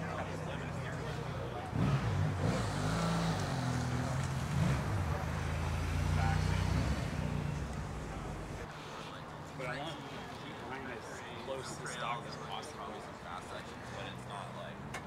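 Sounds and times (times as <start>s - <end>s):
vehicle engine driving past: 0.8s - 8.7s.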